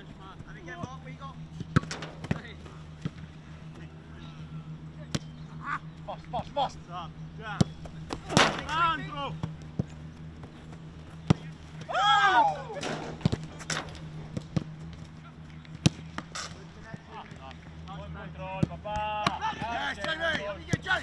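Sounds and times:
steady low hum: 0.0 - 21.0
footballs kicked hard: 7.6 - 10.6, 12.8 - 14.8
people shouting: 11.9 - 12.9.

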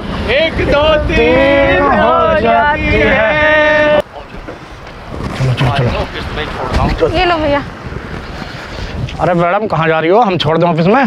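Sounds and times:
indistinct voices: 0.0 - 7.8
wind buffeting microphone: 0.0 - 11.0.

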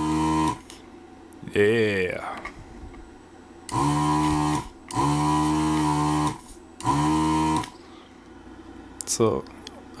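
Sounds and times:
vacuum pump motor hum: 0.0 - 9.0.

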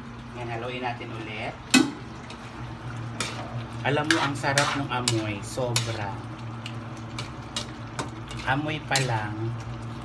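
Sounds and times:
low steady hum: 0.0 - 10.0
stew simmering in a wok: 0.0 - 10.0.

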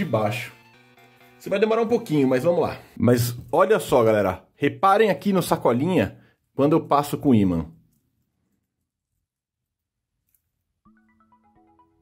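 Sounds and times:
soft background music: 0.0 - 3.2, 10.8 - 12.0.

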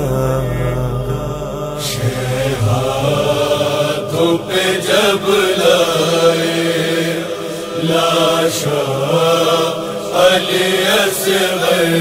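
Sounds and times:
slow vocal chant: 0.0 - 12.0.

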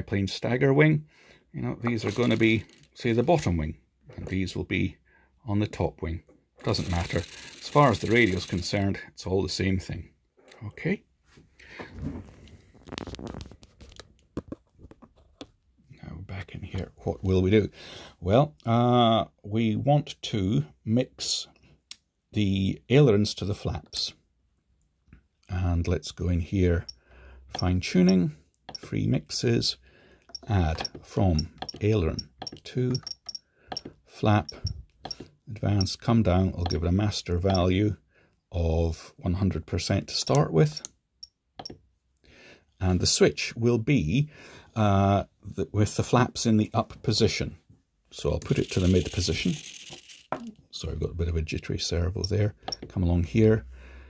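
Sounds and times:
transmitter clicks and rattles: 1.8 - 3.0, 30.3 - 36.0.

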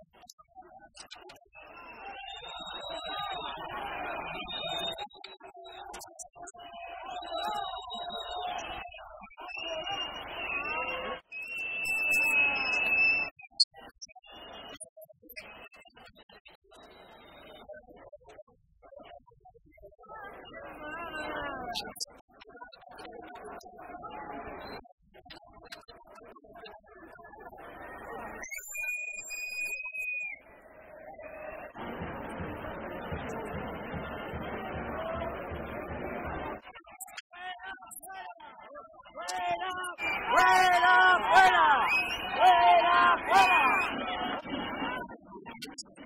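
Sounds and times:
street noise: 1.1 - 13.3, 30.6 - 37.2, 39.2 - 45.2
high whistle-like tone: 1.6 - 17.6, 28.3 - 30.4, 41.8 - 42.4
voices talking: 30.9 - 46.0.

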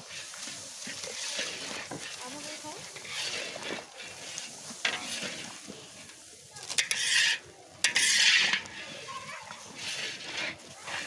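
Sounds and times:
food sizzling in oil: 0.0 - 11.0
metal ladle scraping a pan: 0.0 - 11.0.

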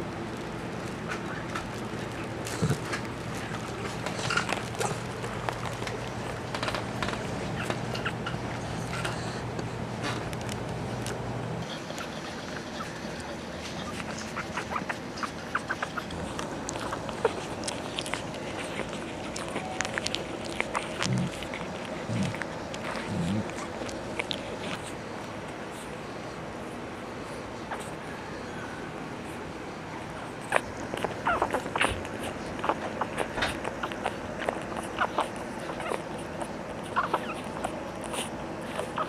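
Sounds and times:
puppies squeaking: 1.1 - 9.4, 11.6 - 25.0, 27.6 - 28.8, 30.0 - 39.0
puppy squeak: 31.2 - 34.2, 36.8 - 39.0.

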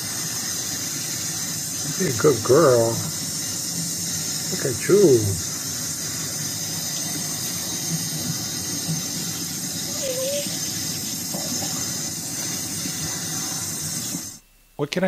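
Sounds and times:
tap water running into sink: 0.0 - 14.3.

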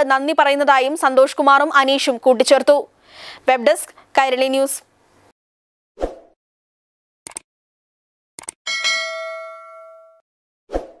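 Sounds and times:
bell ding: 8.7 - 10.2.

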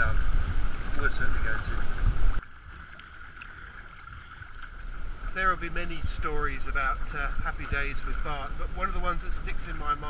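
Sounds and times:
wind buffeting microphone: 0.0 - 2.4, 4.1 - 10.0
water running along boat hull: 0.0 - 10.0.

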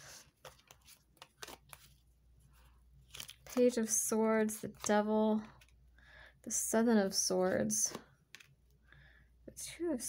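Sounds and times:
faint clicks of cards handled: 0.2 - 2.0, 7.9 - 8.8.

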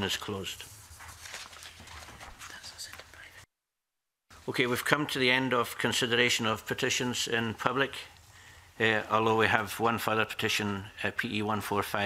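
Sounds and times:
papers being handled: 0.0 - 3.4.

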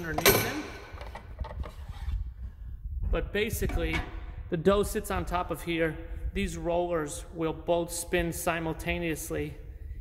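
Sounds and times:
camera handling rumble: 1.0 - 2.4.

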